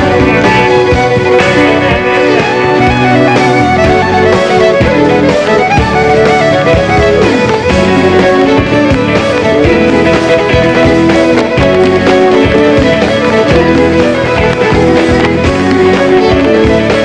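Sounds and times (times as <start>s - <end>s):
acoustic guitar: 0.0s - 17.0s
drums beating: 0.0s - 17.0s
electric fiddle melody: 0.0s - 17.0s.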